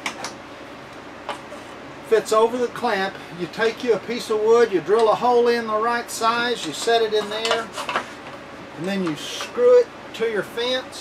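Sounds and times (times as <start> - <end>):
low shop hum: 0.0 - 11.0.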